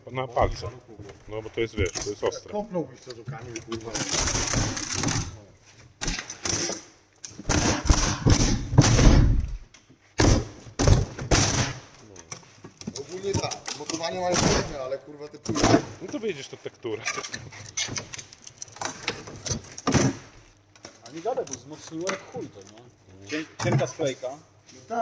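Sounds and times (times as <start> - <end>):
knocks and thumps on crate: 10.2 - 11.8.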